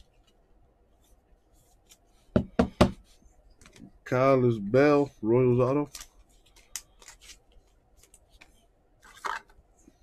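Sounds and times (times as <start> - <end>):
trading cards handled: 5.8 - 10.0.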